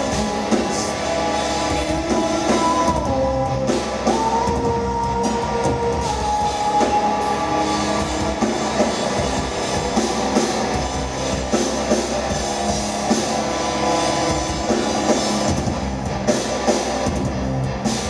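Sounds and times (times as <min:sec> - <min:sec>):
drum kit: 0:00.0 - 0:18.0
electric guitar: 0:00.0 - 0:18.0.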